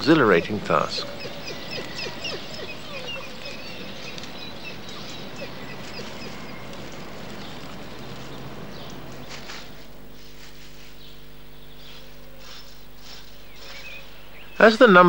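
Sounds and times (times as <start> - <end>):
birds chirping: 0.0 - 15.0
outdoor background noise: 0.0 - 15.0.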